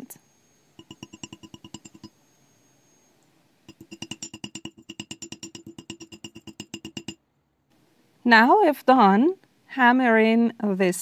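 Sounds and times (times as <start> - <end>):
small hammer tapping on wire: 0.8 - 2.2, 3.7 - 7.2.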